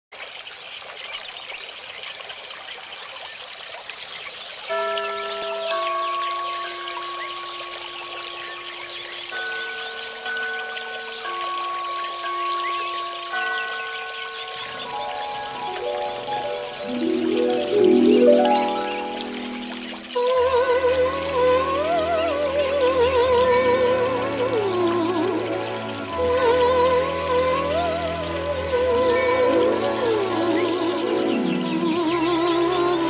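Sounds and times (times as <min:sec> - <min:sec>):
fountain water trickling: 0:00.1 - 0:33.0
gentle instrumental melody: 0:04.7 - 0:33.0.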